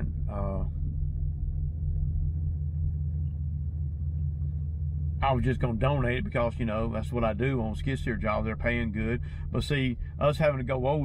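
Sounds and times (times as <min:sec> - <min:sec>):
truck engine idling: 0:00.0 - 0:11.0.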